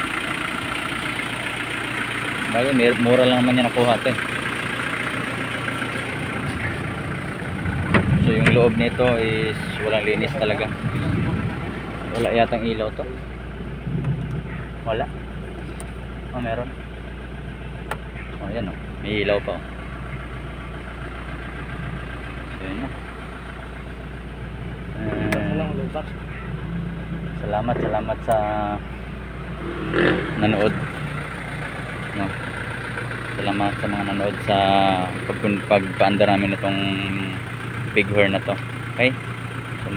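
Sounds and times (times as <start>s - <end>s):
diesel engine idling: 0.0s - 39.9s.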